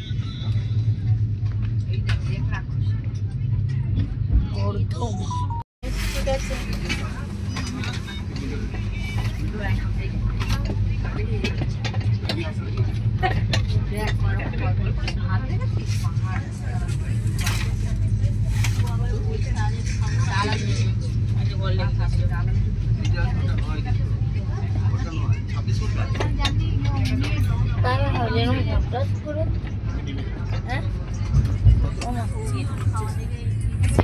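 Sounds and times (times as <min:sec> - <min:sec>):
passengers talking indistinctly: 0:00.0 - 0:34.0
train rumbling at speed: 0:00.0 - 0:34.0.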